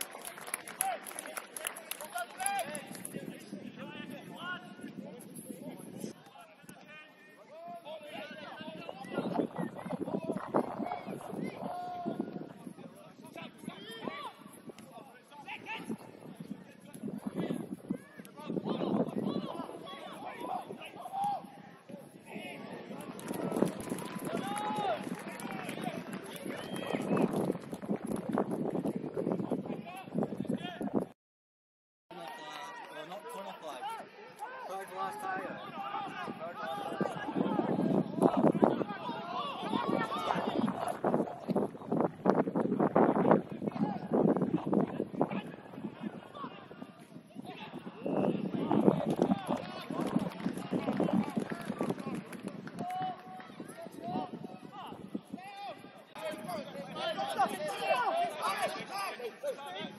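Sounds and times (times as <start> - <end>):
players shouting: 22.3 - 27.2, 32.2 - 41.1.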